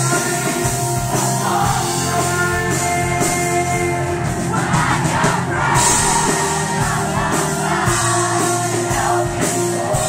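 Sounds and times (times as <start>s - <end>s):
crowd singing and shouting: 0.0s - 10.0s
rock band with piano: 0.0s - 10.0s.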